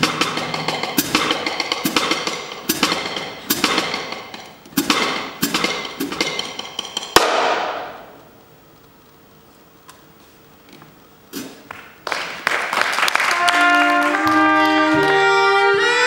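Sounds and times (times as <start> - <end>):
drum kit played with sticks: 0.0 - 8.2.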